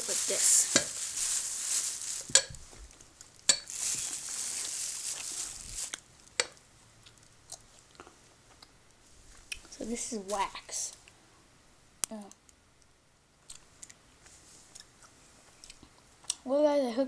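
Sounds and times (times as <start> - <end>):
plastic bag rustling: 0.0 - 6.3, 9.2 - 10.9.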